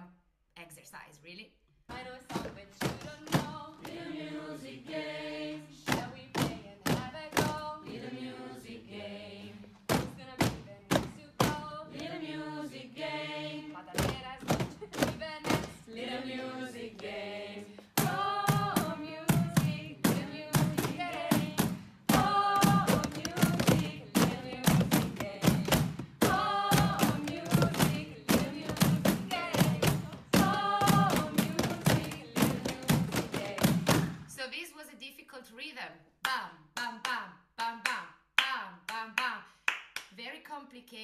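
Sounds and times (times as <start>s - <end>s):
group singing a chant: 1.9s - 34.2s
hands knocking on chairs: 9.9s - 11.7s.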